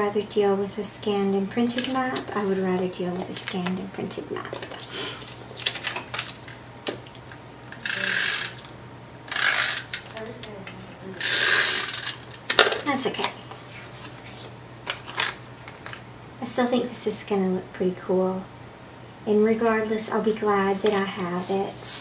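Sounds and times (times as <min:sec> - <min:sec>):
paper clicks and rustles: 0:04.5 - 0:07.3, 0:13.5 - 0:16.0
tape runner rasping across card: 0:07.8 - 0:08.7, 0:09.3 - 0:10.1, 0:11.2 - 0:12.2.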